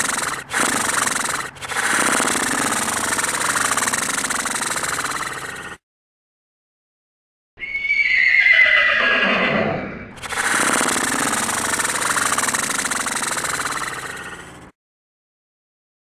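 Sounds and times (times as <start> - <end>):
horse whinny: 7.6 - 11.6.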